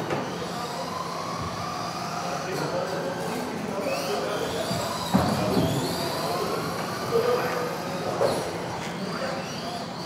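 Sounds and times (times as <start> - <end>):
rc car motors whining: 0.0 - 10.0.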